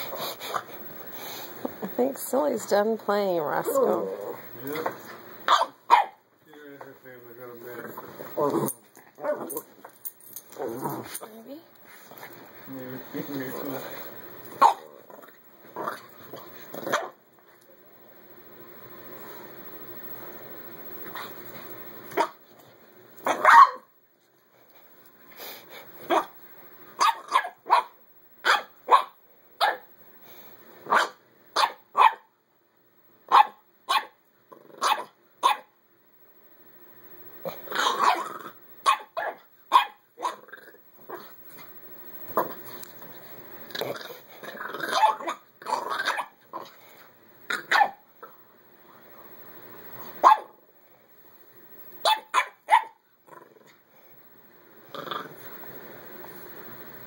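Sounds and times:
small dogs barking: 0:05.4 - 0:06.2, 0:14.5 - 0:15.0, 0:16.8 - 0:17.2, 0:22.1 - 0:22.4, 0:23.2 - 0:23.9, 0:26.0 - 0:26.4, 0:27.0 - 0:29.9, 0:30.9 - 0:32.3, 0:33.3 - 0:34.2, 0:34.8 - 0:35.7, 0:37.4 - 0:40.5, 0:44.8 - 0:46.7, 0:47.5 - 0:48.4, 0:50.2 - 0:50.6, 0:52.0 - 0:53.0.

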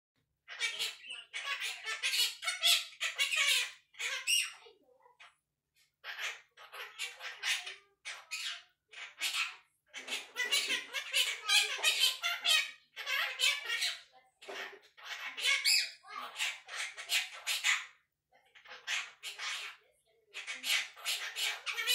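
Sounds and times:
parrot chattering: 0:00.5 - 0:05.4, 0:06.0 - 0:21.9.

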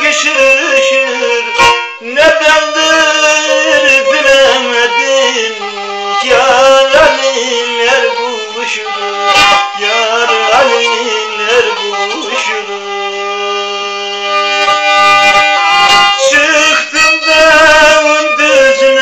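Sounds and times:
bowed fiddle melody: 0:00.0 - 0:19.0
man singing: 0:00.0 - 0:19.0.

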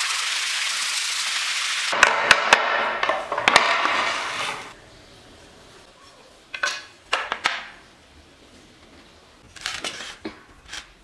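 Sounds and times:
sharp wooden knocks: 0:02.0 - 0:04.1.

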